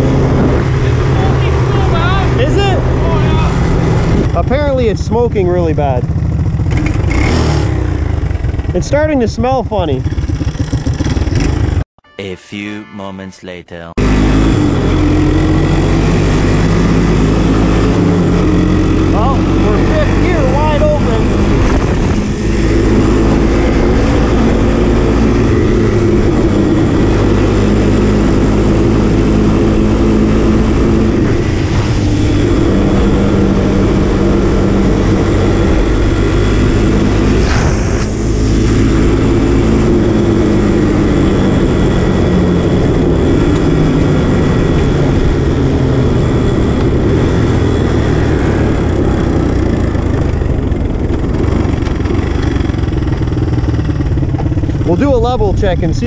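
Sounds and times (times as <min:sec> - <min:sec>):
three-wheeler engine running: 0:00.0 - 0:11.8, 0:14.0 - 0:56.0.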